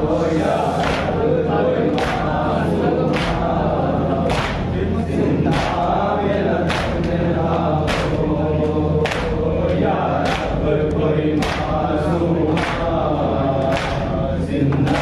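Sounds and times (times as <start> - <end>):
men chanting a lament: 0.0 - 15.0.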